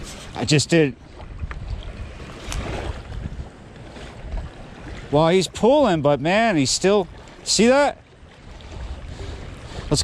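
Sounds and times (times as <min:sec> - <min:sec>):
wind rumbling on microphone: 0:00.0 - 0:06.0, 0:08.2 - 0:10.0
choppy river water: 0:00.0 - 0:10.0.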